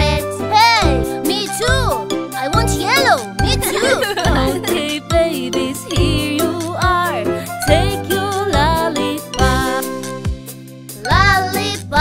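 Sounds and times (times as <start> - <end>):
upbeat children's song music: 0.0 - 12.0.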